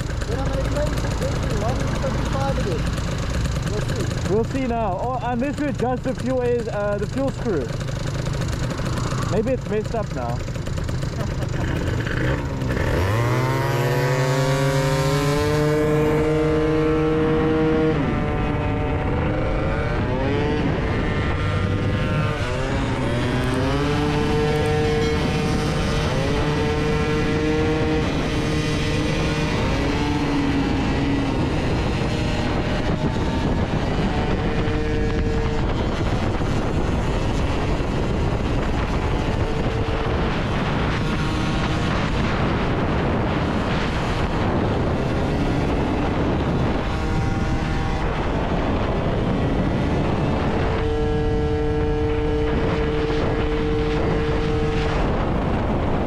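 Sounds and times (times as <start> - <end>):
two-stroke scooter engine: 0.0 - 56.0
wind and road noise: 0.0 - 56.0.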